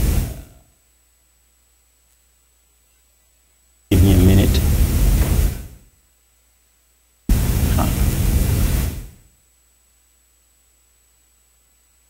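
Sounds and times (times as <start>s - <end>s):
faint hum: 0.0s - 12.0s
loud static hiss: 0.0s - 12.0s.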